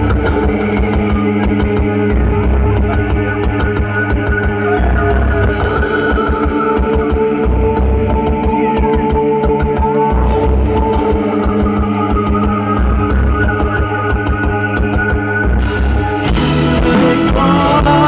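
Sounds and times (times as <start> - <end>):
fast driving bass drum beat: 0.0 - 18.0.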